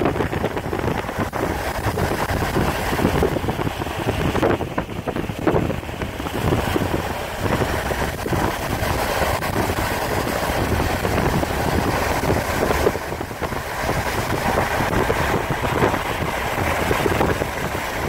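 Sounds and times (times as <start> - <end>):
car road and wind noise: 0.0 - 18.0
wind buffeting microphone: 0.0 - 18.0.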